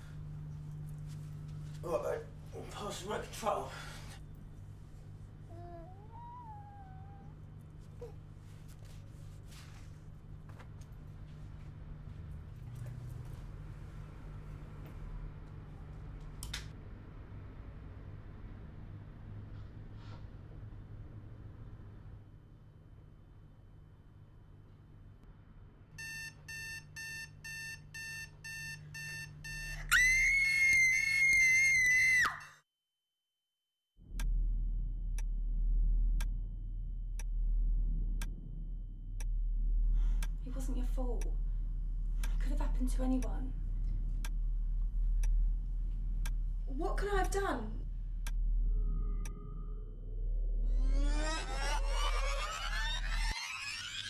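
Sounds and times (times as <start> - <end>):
baby whining cry: 5.5 - 7.4
digital alarm clock beeping: 26.0 - 29.8
woman screaming: 29.9 - 32.6
low hum: 34.0 - 54.0
slow clock ticking: 39.2 - 49.4.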